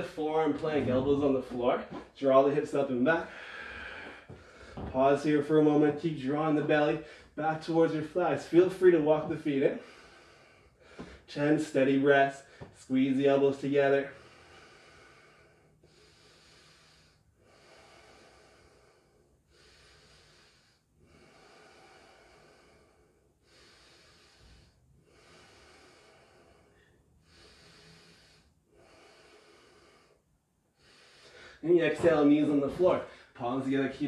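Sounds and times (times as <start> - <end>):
slow breathing: 0.0 - 12.9, 13.5 - 34.0.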